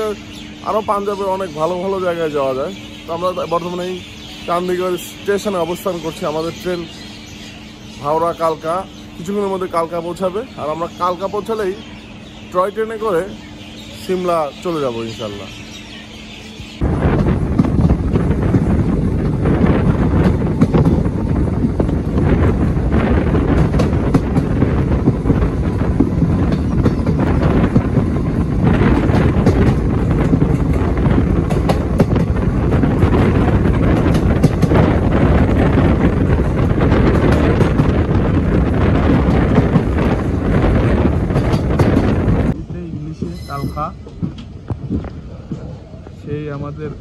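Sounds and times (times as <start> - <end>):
wind buffeting microphone: 15.4 - 47.0
train wheels clattering on rails: 16.6 - 46.8.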